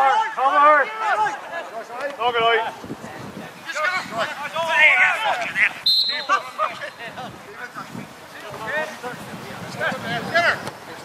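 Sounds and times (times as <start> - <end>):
players shouting: 0.0 - 2.8, 3.5 - 10.7
referee's whistle blast: 5.8 - 6.6.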